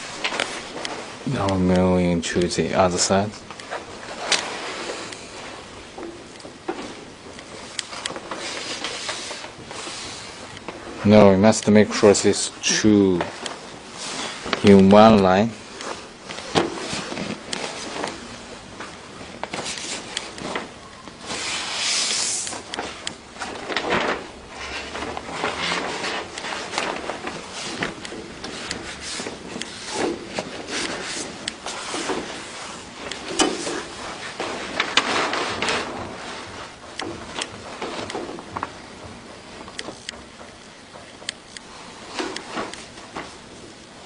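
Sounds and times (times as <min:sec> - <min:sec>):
paper sheet rustling and sliding: 0:00.0 - 0:02.0, 0:02.6 - 0:05.8, 0:06.4 - 0:43.8.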